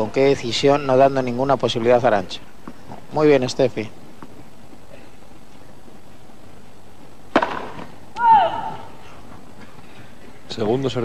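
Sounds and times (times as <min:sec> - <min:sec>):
racket hitting tennis ball: 0:07.3 - 0:08.3.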